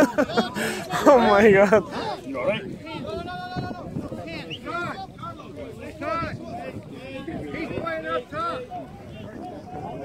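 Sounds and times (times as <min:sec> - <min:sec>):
person laughing: 0:00.0 - 0:01.1.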